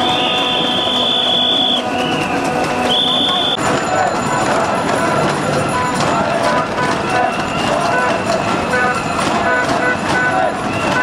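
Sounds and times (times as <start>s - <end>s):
crowd talking and calling: 0.0s - 11.0s.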